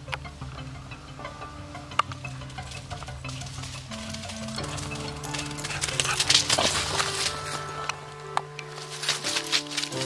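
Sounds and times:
background music with held notes: 0.0s - 10.0s
dog paws crunching through leaves: 2.8s - 10.0s.

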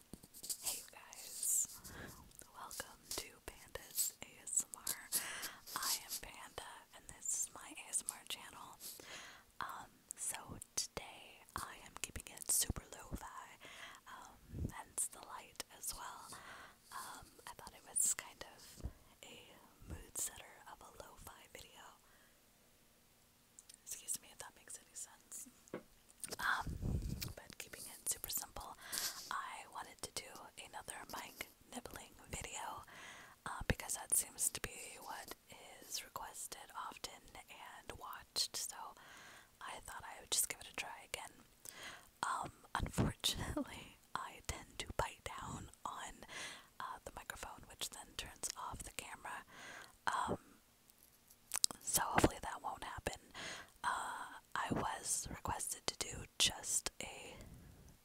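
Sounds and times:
breathy whispering: 0.4s - 22.2s, 26.2s - 50.4s, 51.6s - 57.5s.

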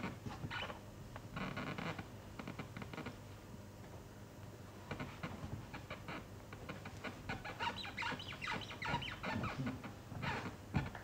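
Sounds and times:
short falling squeaks: 7.3s - 10.5s.

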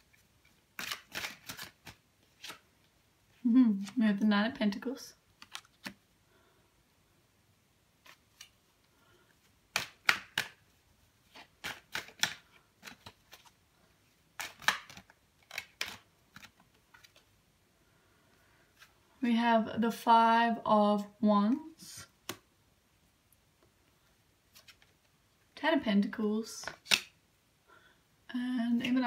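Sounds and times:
cards clicking and snapping: 0.7s - 2.6s, 5.4s - 6.0s, 9.7s - 10.6s, 11.3s - 13.5s, 14.4s - 17.3s, 22.2s - 22.4s, 26.6s - 27.2s.

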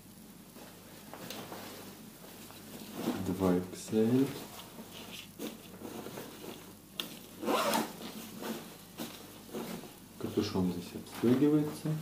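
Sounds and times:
fabric rustling: 0.4s - 12.0s
zipper click: 7.4s - 8.0s
zipper rasp: 7.4s - 8.7s.

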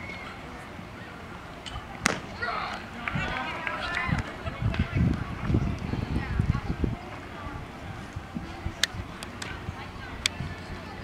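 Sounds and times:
baseball smack: 2.0s - 2.8s
people calling out: 2.1s - 4.7s.

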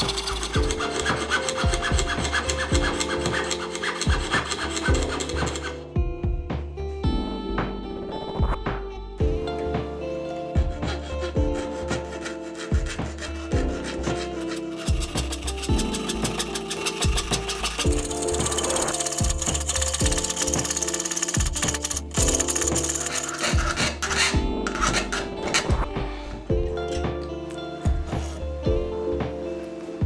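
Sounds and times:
saw rasping through metal: 0.0s - 5.8s, 10.7s - 25.8s
background music: 0.0s - 30.0s.

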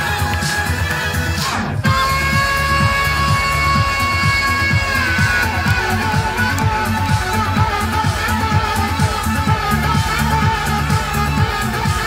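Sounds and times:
electronic dance backing track: 0.0s - 12.0s
saxophone playing: 0.0s - 12.0s.

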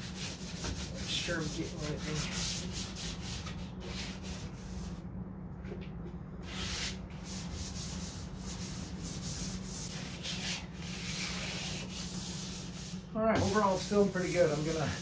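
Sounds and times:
sandpaper rasping on panel: 0.0s - 5.0s, 6.4s - 15.0s
steady low hum: 0.0s - 15.0s.

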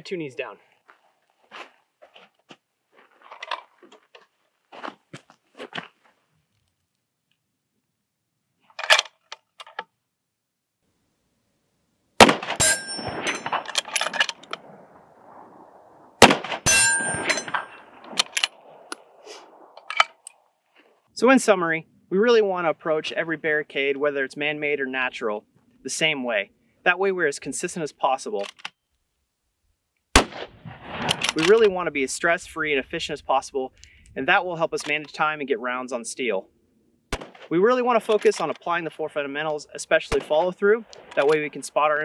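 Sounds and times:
rifle bolt metallic clicks: 8.8s - 9.9s, 28.4s - 28.8s, 31.0s - 31.7s
rifle shots with echo: 12.2s - 13.9s, 14.6s - 19.7s, 30.2s - 31.5s, 37.1s - 37.5s
rifle handling clicks: 28.4s - 28.8s, 31.1s - 31.6s.

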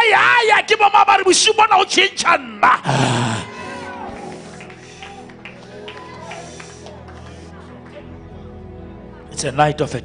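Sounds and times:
man shouting through microphone: 0.0s - 3.6s
held chords of background music: 0.0s - 10.0s.

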